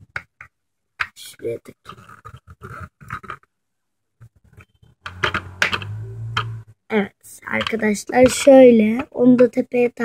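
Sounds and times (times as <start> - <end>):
plastic toy clicks and knocks: 4.5 - 6.6, 7.5 - 9.5
low steady hum: 4.7 - 6.8.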